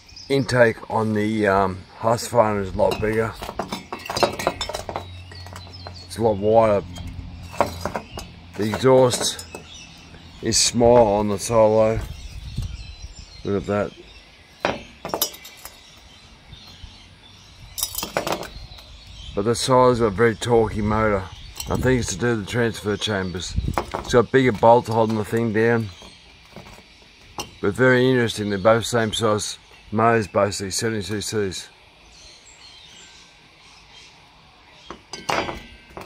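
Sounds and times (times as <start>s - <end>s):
metal parts clinking on a table: 2.9s - 6.0s, 7.0s - 9.7s, 14.6s - 15.8s, 17.8s - 18.6s, 35.1s - 36.0s.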